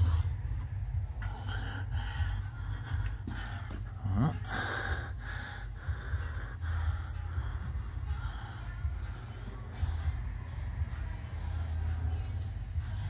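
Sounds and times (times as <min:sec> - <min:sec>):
breathing close to microphone: 0:00.0 - 0:13.0
steady low rumble: 0:00.0 - 0:13.0.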